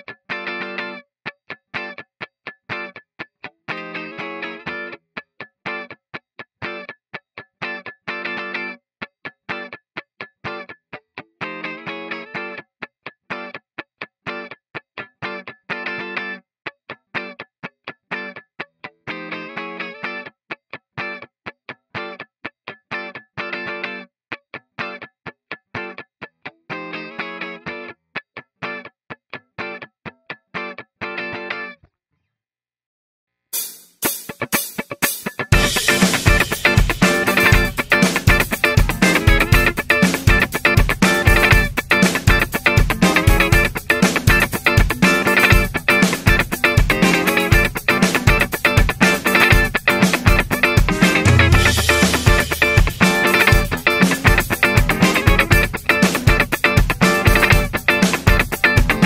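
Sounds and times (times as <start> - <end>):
funk electric guitar rhythm: 0.1 - 6.0, 6.6 - 8.8, 9.5 - 10.8, 11.4 - 12.6, 13.3 - 13.6, 14.2 - 17.5, 18.1 - 20.3, 21.9 - 24.1, 26.7 - 27.9, 29.6 - 31.8, 33.6 - 59.0.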